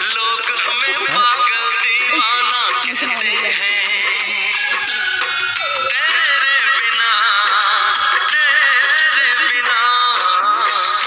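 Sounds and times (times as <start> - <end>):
song with instrumental backing: 0.0 - 11.0.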